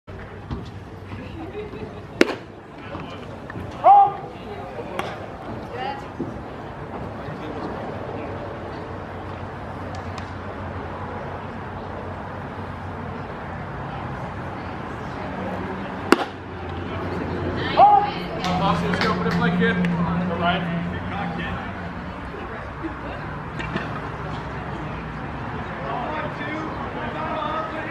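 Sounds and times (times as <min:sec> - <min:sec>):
faint crowd chatter: 0:00.1 - 0:27.9
baseball popping into mitt: 0:02.2 - 0:02.4, 0:16.1 - 0:16.4.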